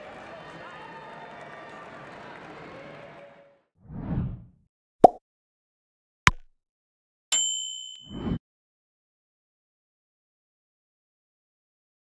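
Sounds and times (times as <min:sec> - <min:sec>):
notification bell ding: 0:07.4 - 0:08.4.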